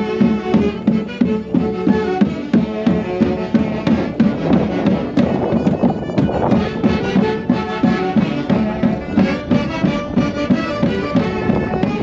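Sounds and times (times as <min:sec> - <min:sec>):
folk music with steady beat: 0:00.0 - 0:12.0.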